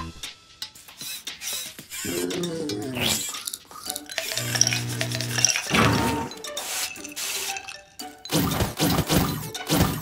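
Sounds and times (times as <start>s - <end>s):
glassy clinks: 3.3s - 8.3s.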